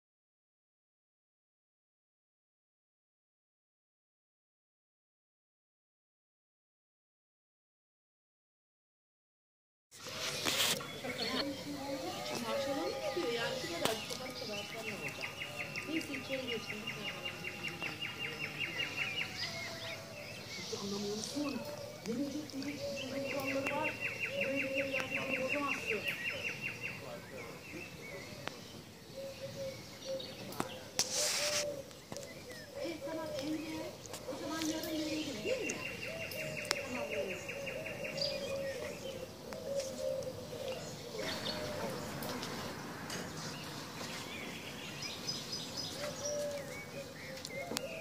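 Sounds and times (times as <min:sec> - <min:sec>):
lower calls or distant voices: 0:10.0 - 0:48.0
songbird trilling: 0:10.8 - 0:27.0.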